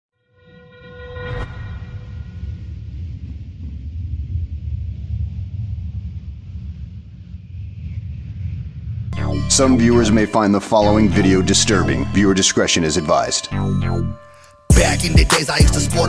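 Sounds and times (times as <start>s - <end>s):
horn-like blast with sharp hit: 0.2s - 3.1s
deep steady rumble: 1.4s - 10.3s.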